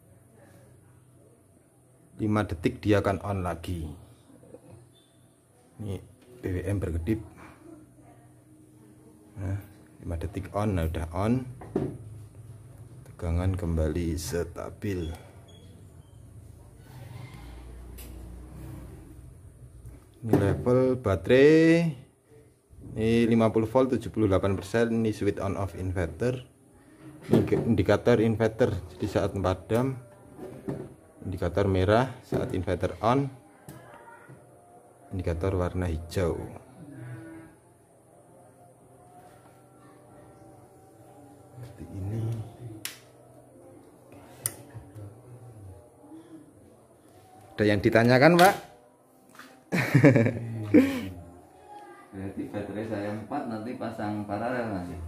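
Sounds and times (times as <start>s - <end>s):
faint low hum: 0.0s - 55.0s.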